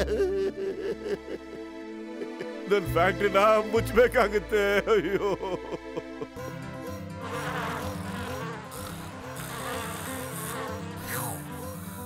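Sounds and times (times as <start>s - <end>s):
cartoon housefly buzzing: 6.8s - 12.0s.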